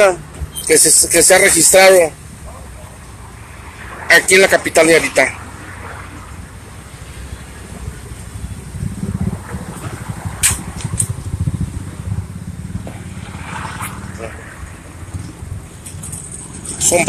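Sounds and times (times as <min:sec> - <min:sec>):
vehicle engine rumble: 0:00.0 - 0:17.0.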